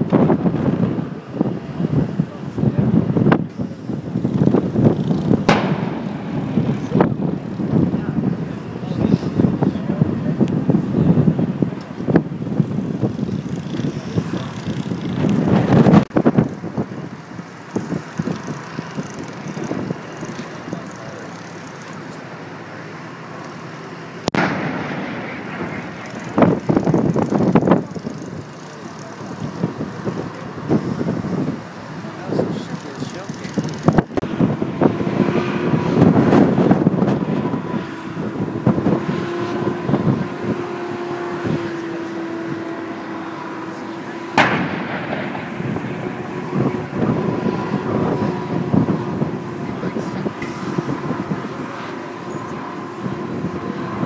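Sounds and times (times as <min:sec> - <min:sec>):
wind buffeting microphone: 0:00.0 - 0:54.0
deck gun firing: 0:05.5 - 0:06.2, 0:44.4 - 0:45.2.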